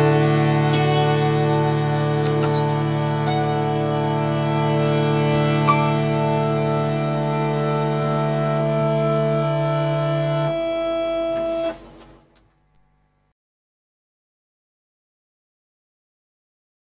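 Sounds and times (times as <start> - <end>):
plucked guitar note: 0.0 - 11.9
keyboard organ sustained chord: 0.0 - 12.2.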